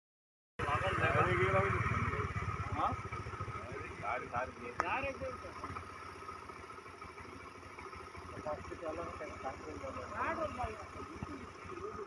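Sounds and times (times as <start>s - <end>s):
people talking: 0.6s - 5.8s, 8.3s - 12.0s
vehicle engine and road noise: 0.6s - 12.0s.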